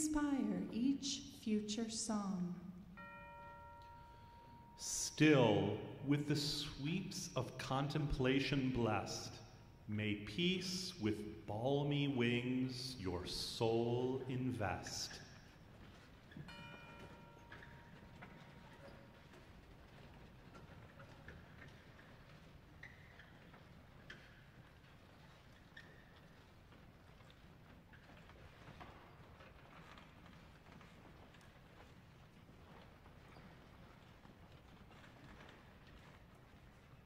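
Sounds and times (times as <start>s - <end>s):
footsteps on stage floor: 13.2s - 37.0s.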